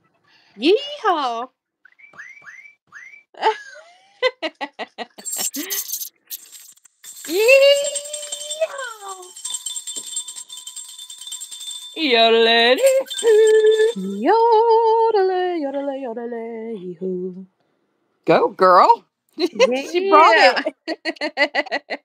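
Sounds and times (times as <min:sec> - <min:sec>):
rattle shaking: 0:05.0 - 0:14.5
steady high tone: 0:05.2 - 0:14.6
person whooping and yelling: 0:07.3 - 0:09.3.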